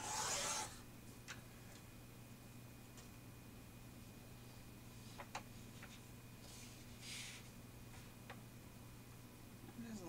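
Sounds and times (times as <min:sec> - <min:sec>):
paper trimmer blade cutting paper: 0:00.0 - 0:00.8.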